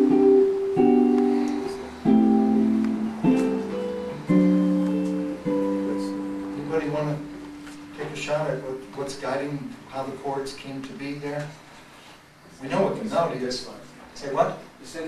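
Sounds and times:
electric guitar chords ringing: 0.0s - 9.8s.

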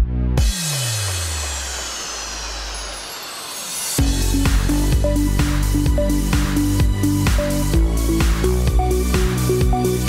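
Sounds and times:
bass tone sliding down: 4.0s - 10.0s.

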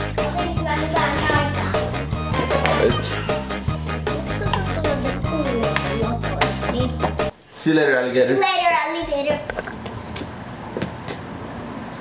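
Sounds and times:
traffic hum: 0.0s - 7.5s, 8.3s - 12.0s.

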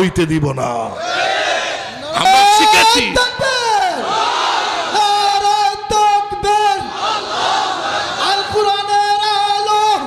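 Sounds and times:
man chanting a sermon: 4.9s - 6.9s, 8.2s - 10.0s.

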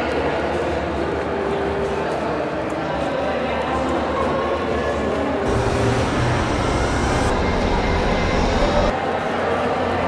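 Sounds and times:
low mechanical rumble: 5.5s - 8.9s.

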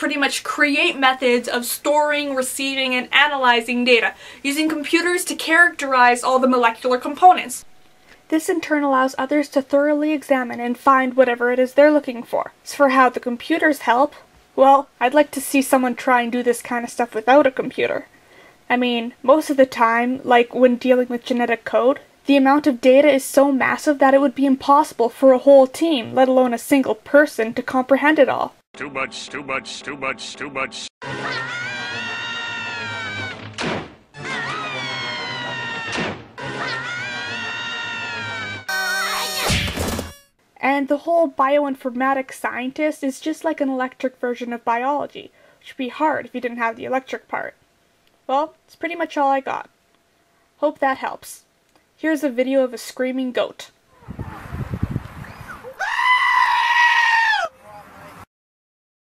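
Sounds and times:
cartoon character screaming: 31.0s - 33.4s, 34.2s - 39.5s, 55.6s - 57.6s
group of cartoon voices yelling: 31.0s - 33.4s, 34.2s - 39.2s.

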